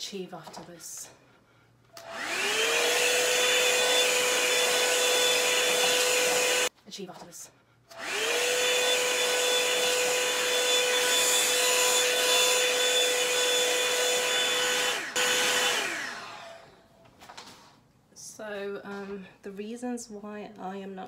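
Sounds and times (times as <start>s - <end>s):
hair dryer motor whine: 1.9s - 6.7s, 7.9s - 17.0s.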